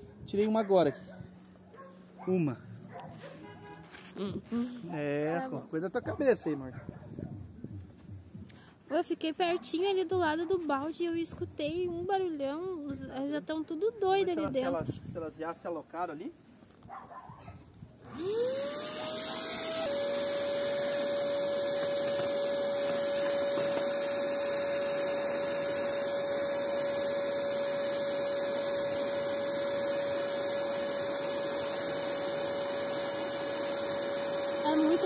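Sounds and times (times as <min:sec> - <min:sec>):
vacuum cleaner motor whining: 0:18.0 - 0:35.0.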